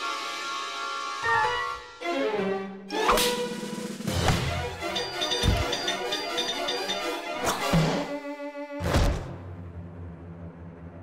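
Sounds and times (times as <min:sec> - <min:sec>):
orchestral cartoon music: 0:00.0 - 0:11.0.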